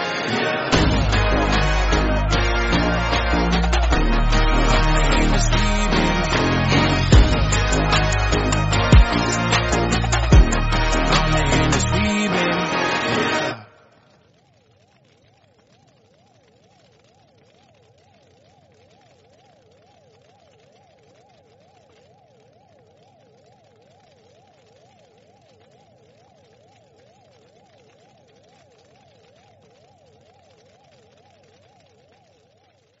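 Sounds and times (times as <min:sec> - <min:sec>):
warbling electronic tone: 0:00.0 - 0:33.0.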